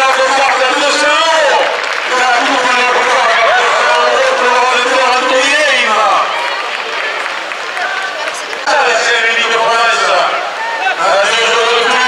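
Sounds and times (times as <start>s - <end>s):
man talking: 0.0s - 6.4s, 8.7s - 12.0s
crowd noise: 0.0s - 12.0s.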